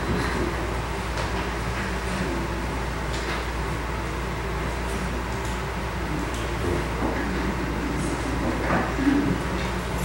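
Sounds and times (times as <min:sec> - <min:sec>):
room hum and hiss: 0:00.0 - 0:10.0.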